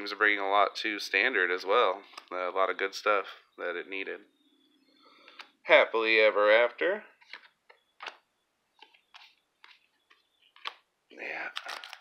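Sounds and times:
cards flipping snaps: 7.2s - 8.2s, 10.4s - 10.9s, 11.5s - 12.0s.

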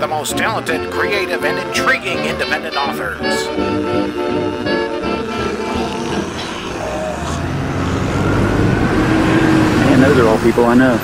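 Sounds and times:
motor vehicle engine: 3.5s - 11.0s.

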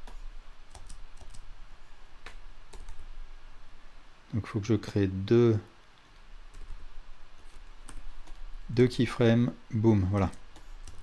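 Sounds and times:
low steady hum: 0.0s - 11.0s
keyboard and mouse clicks: 7.5s - 8.4s, 10.1s - 11.0s.

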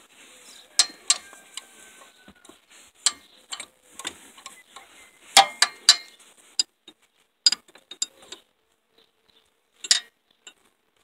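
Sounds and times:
metal wrench clinking on bolts: 0.8s - 1.3s, 5.4s - 6.1s, 9.8s - 10.6s.

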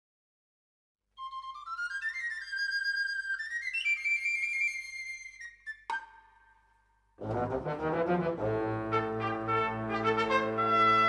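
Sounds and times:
small flute melody: 1.2s - 6.2s.

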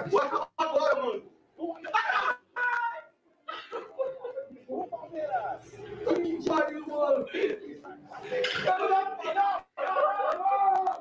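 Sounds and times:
men yelling: 0.0s - 3.2s, 8.2s - 11.0s.

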